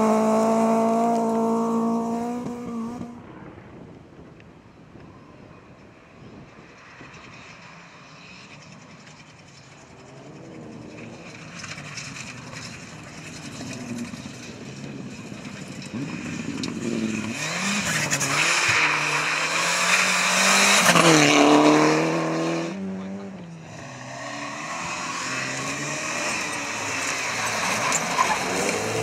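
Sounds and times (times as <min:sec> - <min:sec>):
rally car engine passing at speed: 0:00.0 - 0:03.9, 0:06.2 - 0:29.0.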